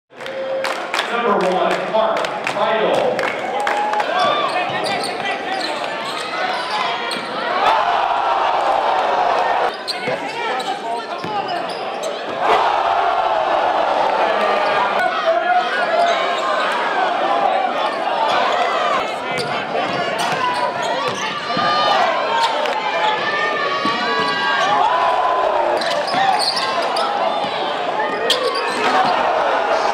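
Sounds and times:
crowd chatter and shouts: 0:00.1 - 0:29.9.

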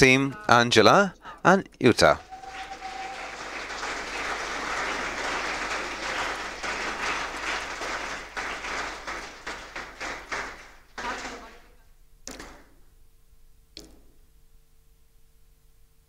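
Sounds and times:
audience applauding: 0:02.0 - 0:11.5.

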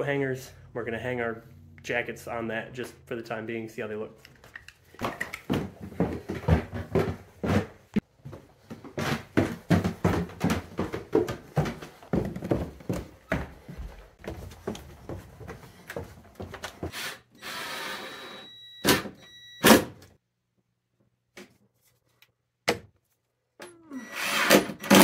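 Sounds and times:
footsteps on wooden floor: 0:05.0 - 0:16.9.

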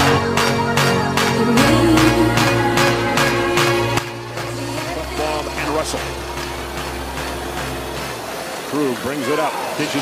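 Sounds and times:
arena crowd noise: 0:00.0 - 0:10.0
faint electronic music: 0:00.0 - 0:10.0
commentator's voice: 0:04.6 - 0:06.4, 0:08.7 - 0:10.0.

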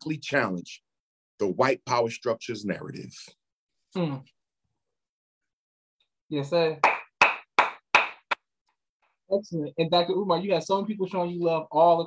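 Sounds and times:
person clapping hands: 0:06.8 - 0:08.4.

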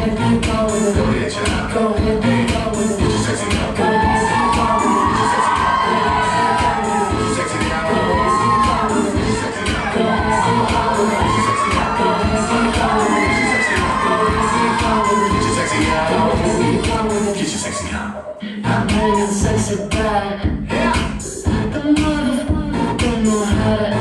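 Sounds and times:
loud dance music: 0:00.0 - 0:24.0
audience cheering and shouting: 0:03.4 - 0:18.0, 0:18.9 - 0:19.4.

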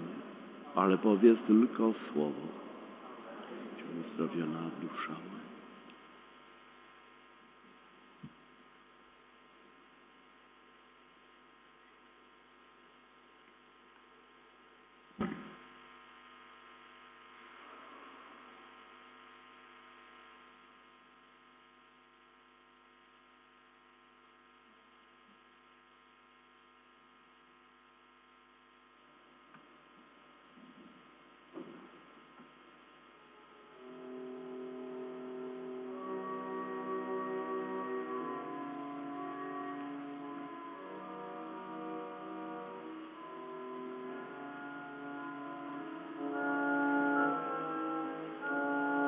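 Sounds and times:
electrical mains hum: 0:00.0 - 0:49.0
sharp knock: 0:15.2 - 0:15.6.

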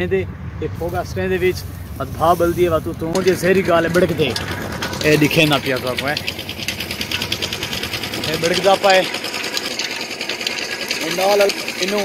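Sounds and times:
person speaking: 0:00.0 - 0:06.3
small engine clattering: 0:01.9 - 0:12.0.

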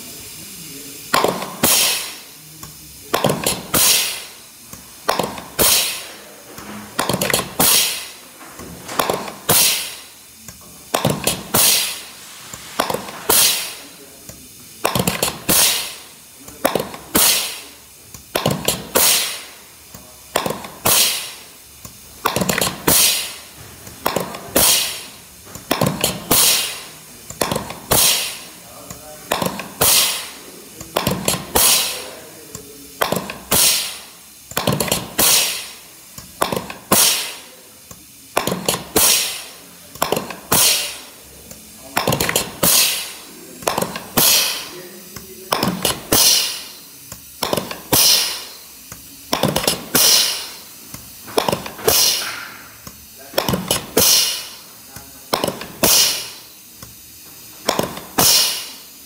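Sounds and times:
air hiss: 0:00.0 - 0:59.0.

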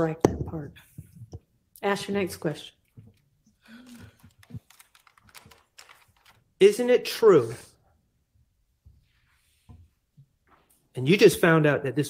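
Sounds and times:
faint laptop keyboard typing: 0:03.0 - 0:06.4.

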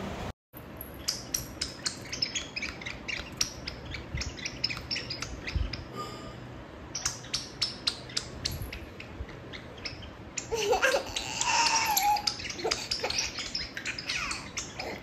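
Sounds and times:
baby laughing and squealing: 0:10.4 - 0:15.0.

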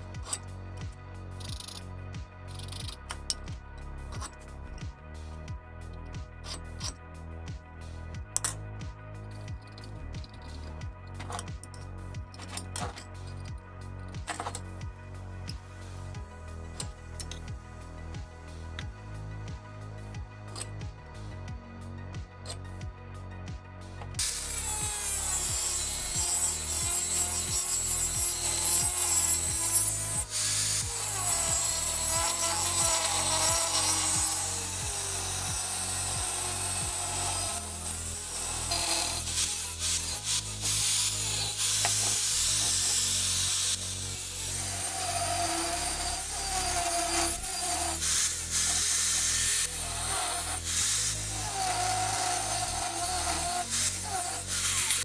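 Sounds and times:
angle grinder cutting steel: 0:24.1 - 0:55.0.

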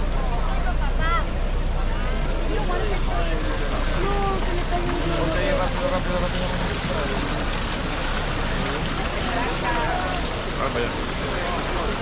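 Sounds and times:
crowd chatter: 0:00.0 - 0:12.0
fountain water splashing into basin: 0:02.0 - 0:12.0.

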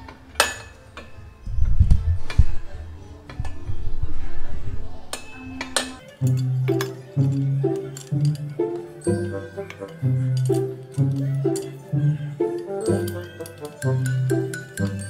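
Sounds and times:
metal pipe clinking and knocking: 0:05.1 - 0:11.9, 0:12.5 - 0:15.0.

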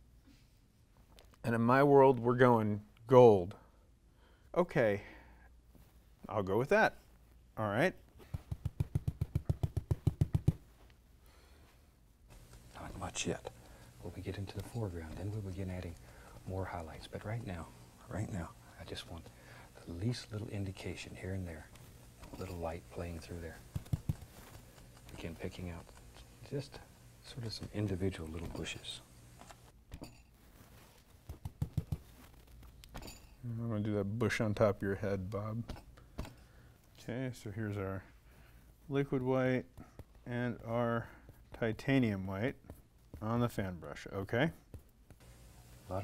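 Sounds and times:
faint low hum: 0:00.0 - 0:46.0
brush tapping on paint: 0:08.2 - 0:10.8, 0:21.7 - 0:26.0, 0:31.1 - 0:32.3.

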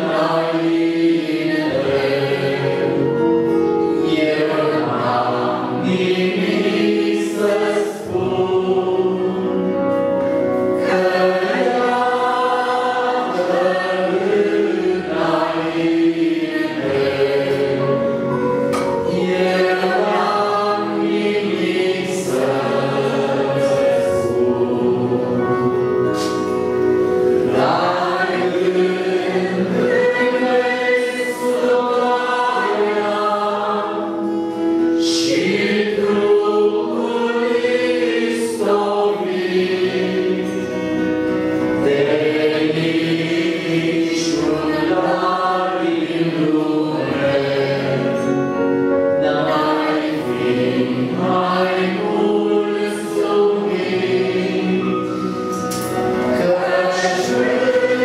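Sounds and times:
accordion held chords: 0:00.0 - 0:58.0
congregation singing a hymn: 0:00.0 - 0:58.0.

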